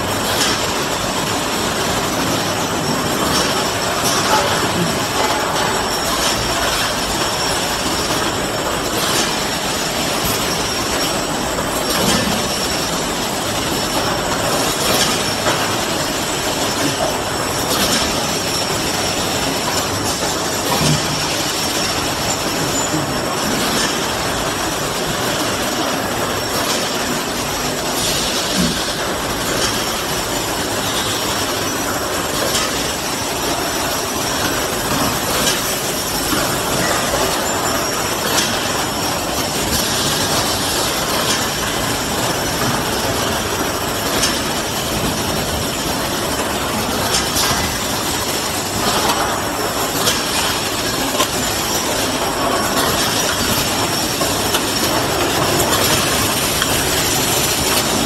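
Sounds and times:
bottle filling machine clatter: 0.0 - 58.0.

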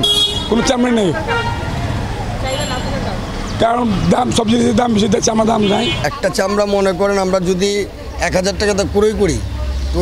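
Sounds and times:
high-pitched vehicle horn: 0.0 - 1.6
street traffic noise: 0.0 - 10.0
man speaking: 0.5 - 1.3, 3.6 - 10.0.

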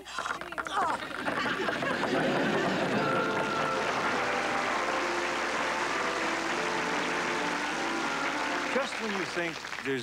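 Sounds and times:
audience applauding: 0.0 - 10.0
melody of held notes: 2.7 - 9.4.

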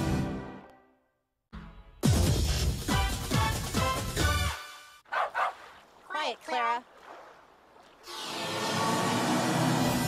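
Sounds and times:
music: 0.0 - 5.0
dog barking: 5.1 - 5.7.

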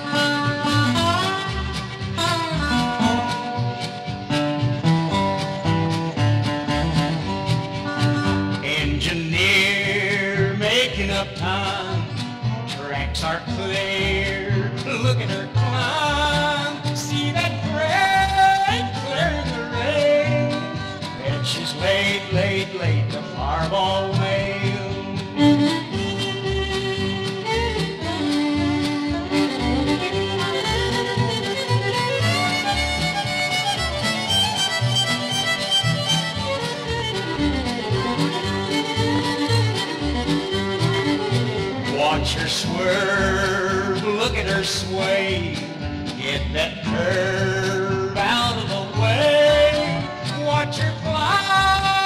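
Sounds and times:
bass and rhythm guitar: 0.0 - 52.0
fiddle with sliding notes: 0.0 - 52.0.

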